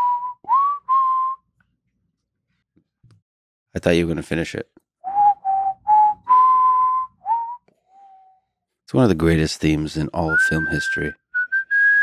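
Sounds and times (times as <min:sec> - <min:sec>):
person whistling a melody: 0:00.0 - 0:01.4, 0:05.0 - 0:08.4, 0:10.3 - 0:12.0.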